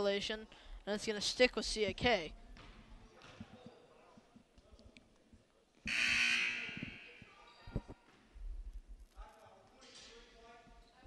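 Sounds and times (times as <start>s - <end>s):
faint court sounds: 2.5s - 8.3s
scoreboard horn blast: 5.9s - 7.2s.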